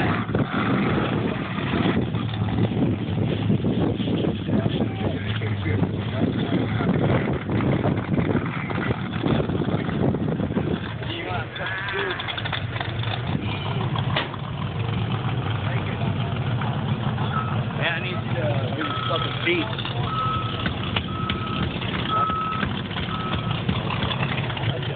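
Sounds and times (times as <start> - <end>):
vehicle engine running: 0.0 - 24.9
people talking: 4.4 - 7.1, 11.0 - 12.4, 17.8 - 20.8, 22.0 - 22.6
reversing beeper: 18.8 - 23.6.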